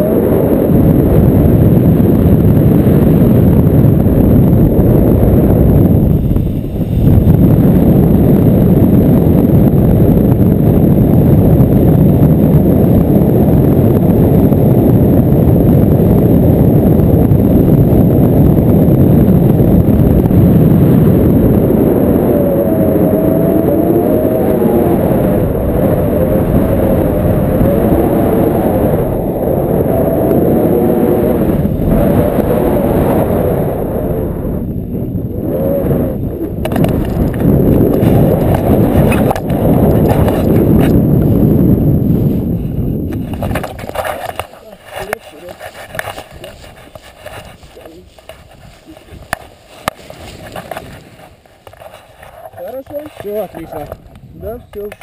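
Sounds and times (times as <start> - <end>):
wind buffeting microphone: 0.0 - 55.0
harness and camera handling: 36.6 - 40.9, 43.1 - 52.6.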